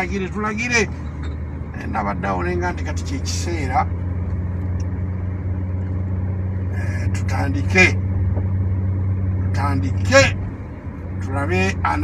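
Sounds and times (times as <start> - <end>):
man talking: 0.0 - 1.0, 1.8 - 3.9, 6.8 - 8.0, 9.5 - 10.4, 11.2 - 12.0
car cabin engine drone: 0.0 - 12.0.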